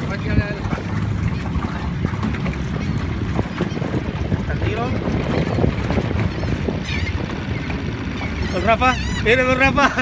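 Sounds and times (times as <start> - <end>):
small boat engine rumble: 0.0 - 10.0
wind buffeting microphone: 0.0 - 10.0.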